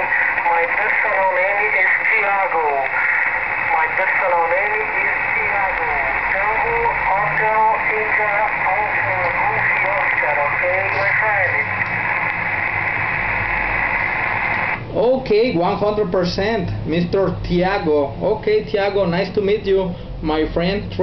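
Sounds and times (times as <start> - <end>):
weak radio speech: 0.0 - 15.2
radio static hiss: 0.0 - 21.0.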